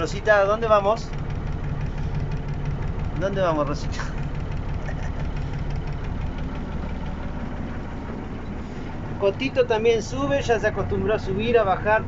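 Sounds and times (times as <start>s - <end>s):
bus diesel engine idling: 0.0s - 12.0s.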